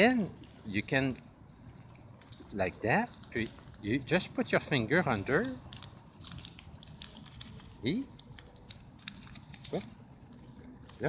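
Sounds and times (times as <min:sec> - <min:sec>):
paper crinkling and clicking: 0:00.2 - 0:11.0.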